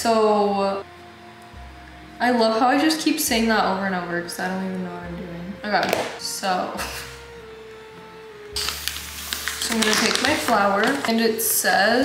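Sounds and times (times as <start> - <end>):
soft background music: 0.0 - 12.0
paper bag rustling: 8.6 - 11.3.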